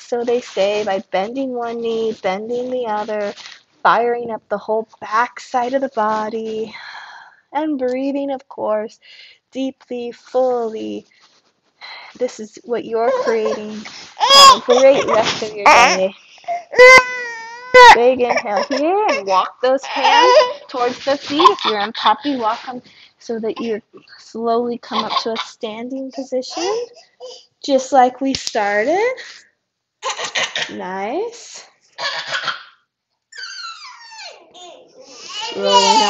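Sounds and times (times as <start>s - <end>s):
baby crying: 13.1s - 20.7s, 33.3s - 36.0s.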